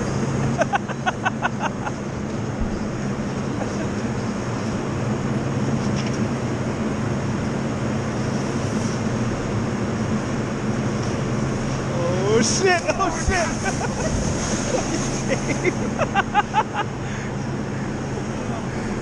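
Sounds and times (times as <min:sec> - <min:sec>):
low hum: 0:00.0 - 0:19.0
snowboard scraping over snow: 0:02.5 - 0:05.0, 0:10.9 - 0:16.2.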